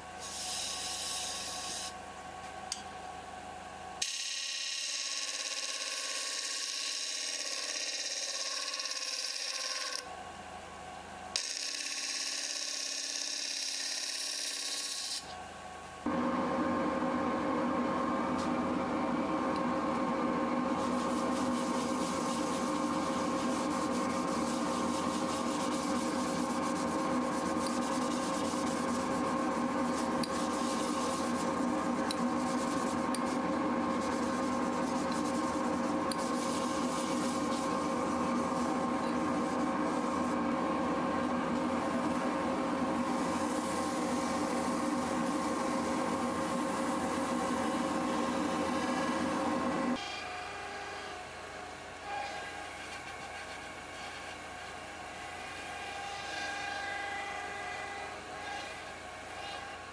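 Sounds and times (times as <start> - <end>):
sanding hiss on spinning wood: 0.2 - 2.0, 20.7 - 40.4, 41.5 - 50.0
cloth rubbing on wood: 20.8 - 33.1, 33.9 - 40.3
wood lathe humming: 20.8 - 50.0.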